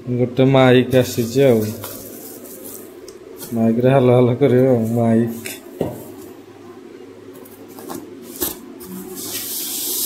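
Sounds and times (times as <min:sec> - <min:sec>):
person's voice: 0:00.1 - 0:01.9, 0:03.4 - 0:05.6
packaging rubbing and rustling: 0:01.0 - 0:03.6, 0:07.5 - 0:09.5.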